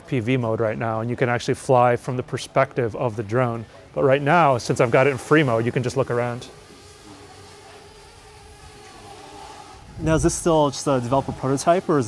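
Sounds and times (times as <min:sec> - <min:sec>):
drone propellers humming: 0:06.5 - 0:11.9.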